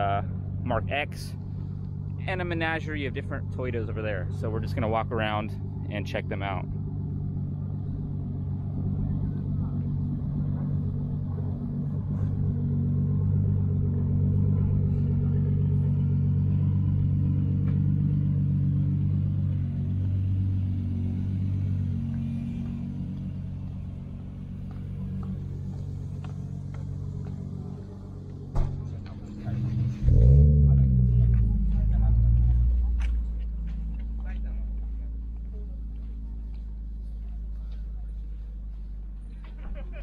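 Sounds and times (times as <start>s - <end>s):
car engine idling: 0.0s - 40.0s.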